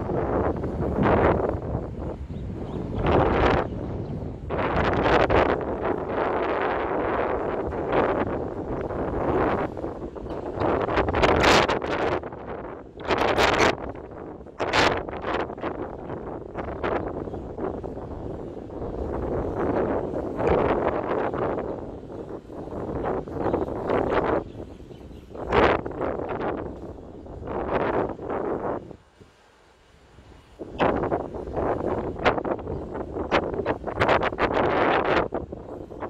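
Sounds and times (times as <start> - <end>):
wind buffeting microphone: 0.0 - 29.4, 30.1 - 36.0.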